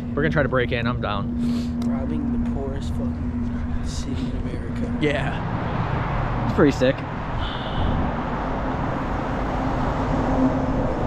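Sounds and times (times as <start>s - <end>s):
faint steady hum: 0.0s - 5.8s
vehicle rumble: 0.0s - 11.0s.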